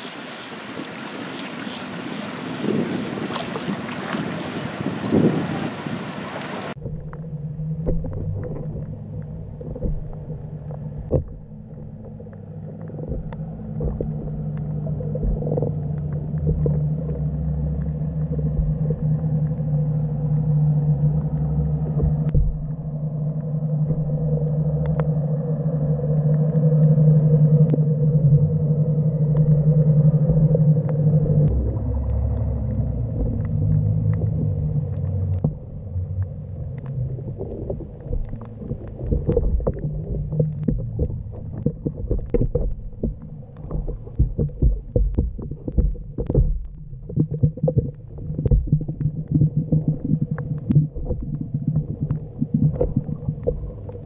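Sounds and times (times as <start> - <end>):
muffled underwater rumble: 0.0 - 54.0
steady low hum: 6.7 - 54.0
faint clicks: 6.8 - 27.9, 29.2 - 54.0.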